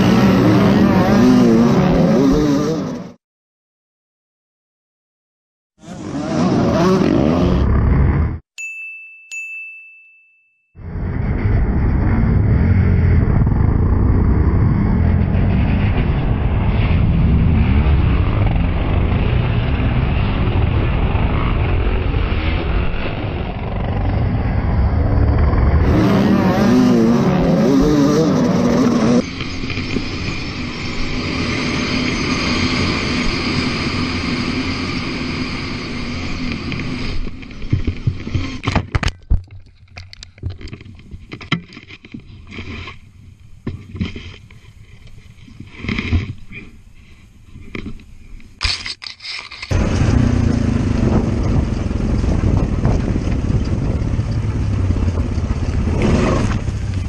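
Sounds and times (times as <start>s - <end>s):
dirt bike engines racing: 0.0s - 3.2s, 5.8s - 8.4s, 10.9s - 38.6s, 49.7s - 57.0s
dirt bike revving: 0.0s - 3.2s, 5.8s - 8.4s, 12.0s - 37.2s, 49.7s - 57.0s
knocks and scrapes: 36.8s - 49.8s
atv engine running low: 49.7s - 57.0s.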